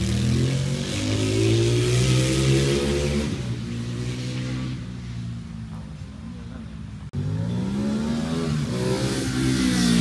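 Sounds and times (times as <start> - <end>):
motorcycle engine revving: 0.0 - 6.0, 7.0 - 10.0.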